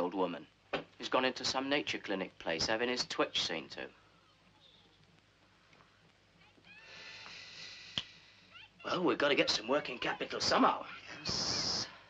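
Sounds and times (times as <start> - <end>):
soundtrack hiss: 0.0 - 12.0.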